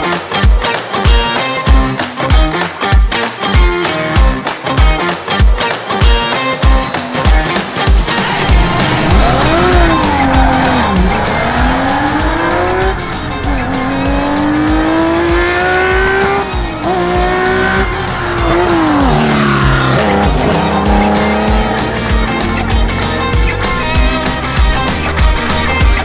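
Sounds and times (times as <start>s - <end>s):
rock music with drumbeat: 0.0s - 26.0s
rally car engine revving: 8.3s - 26.0s.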